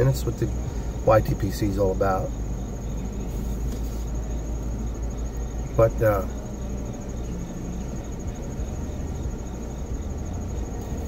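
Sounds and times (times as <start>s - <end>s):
crickets trilling: 0.0s - 11.0s
low steady rumble: 0.0s - 11.0s.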